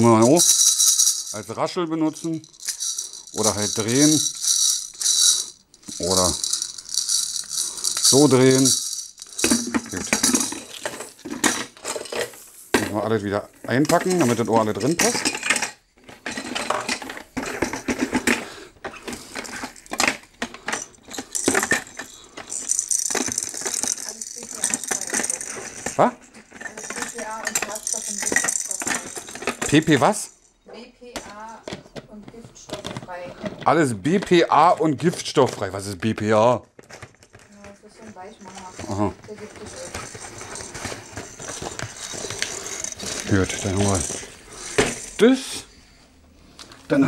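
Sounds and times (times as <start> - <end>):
plastic baby rattle shaken: 0.0 - 12.2, 13.9 - 15.6, 19.1 - 30.4, 36.9 - 45.2
plastic toys clattering against glass jar: 0.0 - 45.4.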